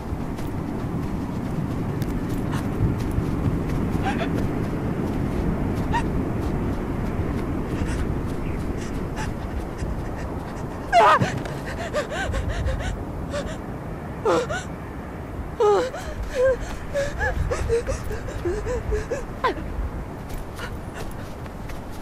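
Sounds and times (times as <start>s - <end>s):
steady low rumble: 0.0s - 14.6s, 15.3s - 22.0s
heavy panting breath: 2.3s - 4.6s, 7.6s - 13.6s, 15.8s - 19.7s, 20.3s - 22.0s
gasping cry: 4.0s - 4.4s, 8.8s - 13.6s, 14.2s - 14.7s, 15.6s - 19.7s
whimpering cry: 4.0s - 4.4s, 5.9s - 6.2s, 8.8s - 13.6s, 14.2s - 14.7s, 15.6s - 19.7s, 20.6s - 21.3s.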